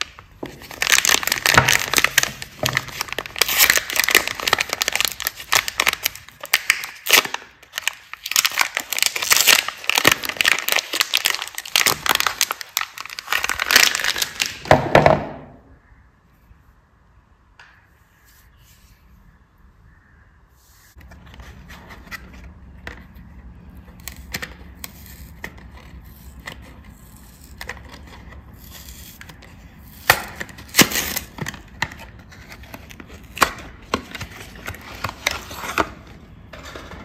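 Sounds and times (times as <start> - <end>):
soap wrapper crinkling and tearing: 0.0 - 14.6.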